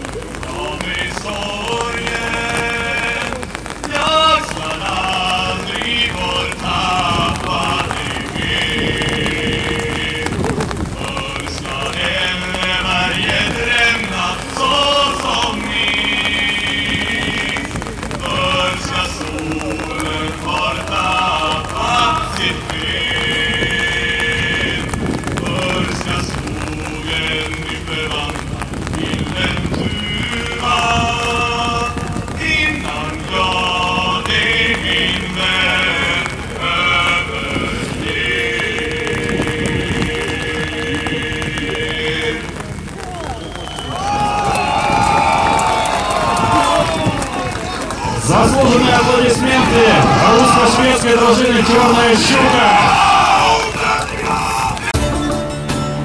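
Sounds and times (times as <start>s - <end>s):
men chanting together: 0.4s - 42.6s, 43.7s - 55.0s.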